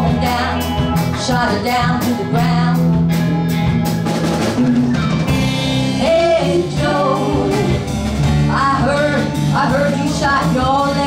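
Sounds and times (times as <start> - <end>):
voices singing: 0.0 - 2.8, 5.9 - 11.0
blues-rock band playing: 0.0 - 11.0.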